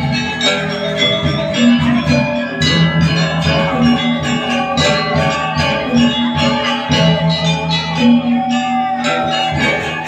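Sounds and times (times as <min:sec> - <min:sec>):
gamelan metallophones ringing: 0:00.0 - 0:10.0.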